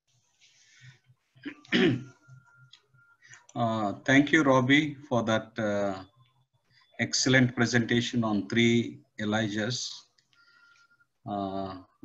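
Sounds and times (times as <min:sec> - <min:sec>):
man clearing throat: 0:01.4 - 0:02.2.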